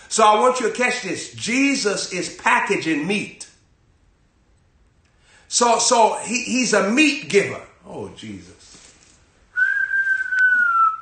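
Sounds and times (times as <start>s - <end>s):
high whistle-like note: 9.6s - 11.0s.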